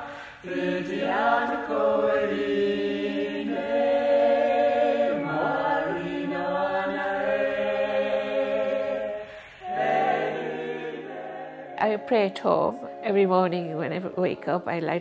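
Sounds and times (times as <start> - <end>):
mixed choir singing: 0.0 - 14.5.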